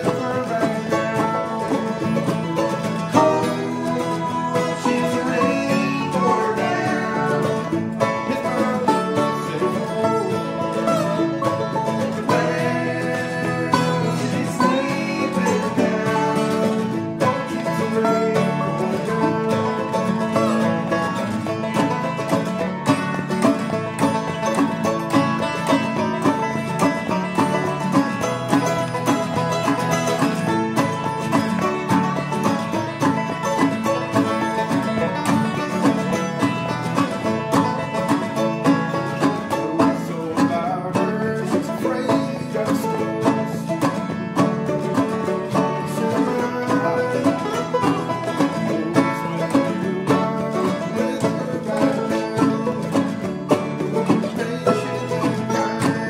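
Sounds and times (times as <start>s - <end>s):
bluegrass band playing: 0.0s - 56.0s.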